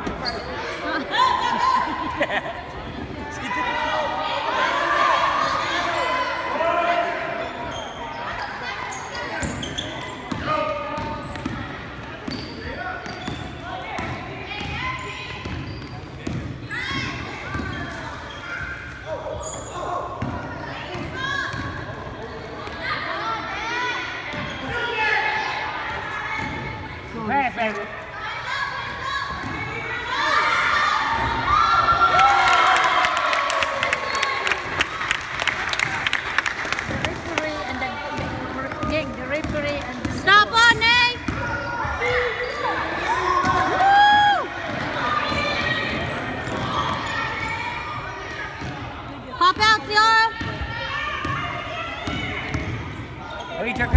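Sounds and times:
sneakers squeaking: 0:00.0 - 0:00.8, 0:07.2 - 0:23.1, 0:24.1 - 0:25.3, 0:36.9 - 0:43.7, 0:44.6 - 0:53.9
spectators' voices: 0:00.0 - 0:53.9.

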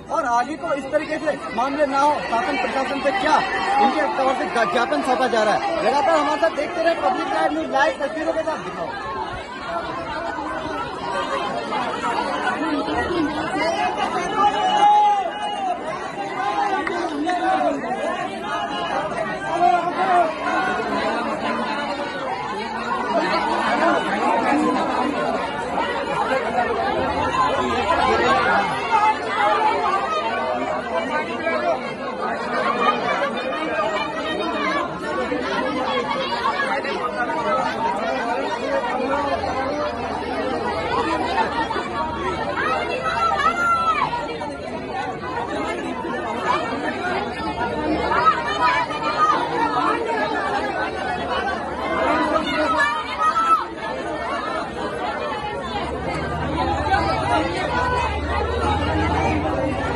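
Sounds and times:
crowd chatter: 0:00.0 - 0:59.9.

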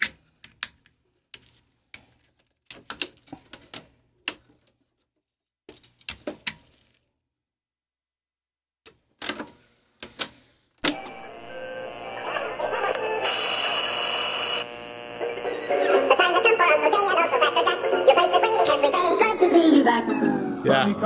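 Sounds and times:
tape deck transport clicks: 0:10.8 - 0:14.6
recorded music playing: 0:14.8 - 0:19.4.

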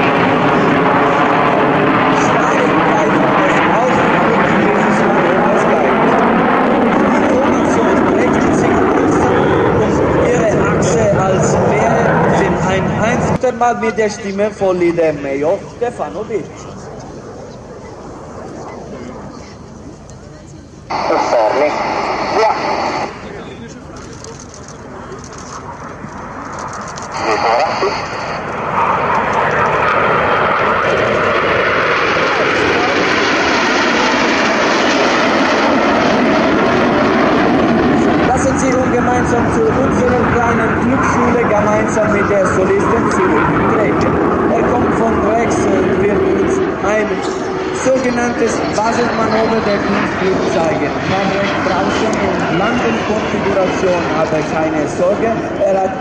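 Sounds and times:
jets flying overhead: 0:00.0 - 0:56.0.

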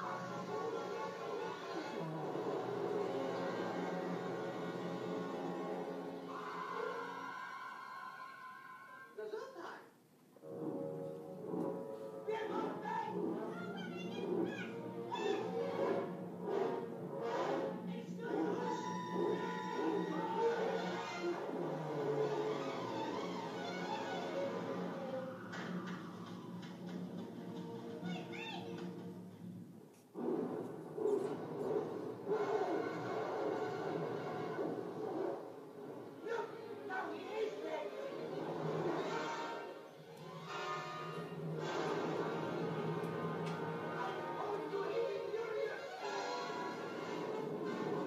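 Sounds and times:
orchestral music: 0:00.0 - 0:09.0, 0:10.4 - 0:29.5, 0:30.4 - 0:48.0
animated film soundtrack from speakers: 0:00.0 - 0:48.0.

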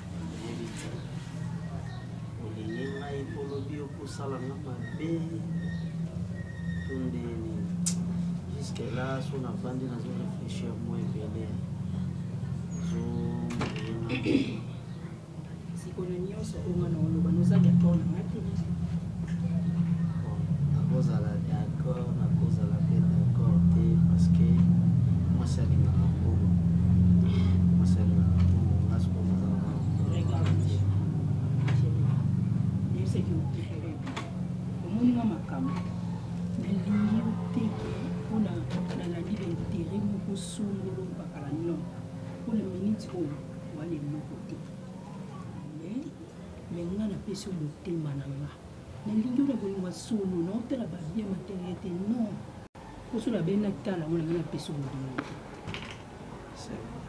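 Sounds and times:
low motor rumble: 0:00.0 - 0:57.0.

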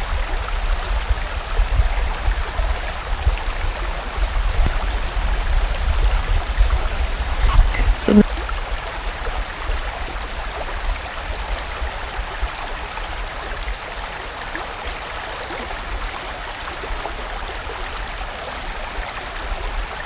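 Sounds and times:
low rumble of water: 0:00.0 - 0:20.0
stream rushing over rocks: 0:00.0 - 0:20.0.

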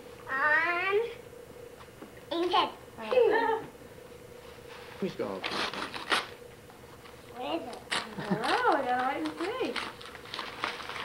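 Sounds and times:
wrapping paper rustling and tearing: 0:05.4 - 0:06.4, 0:07.8 - 0:11.0.

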